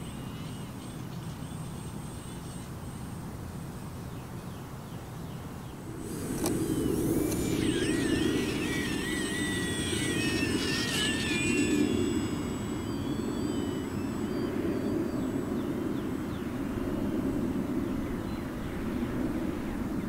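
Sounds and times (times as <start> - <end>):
rc airplane motor and propeller: 5.8 - 17.1.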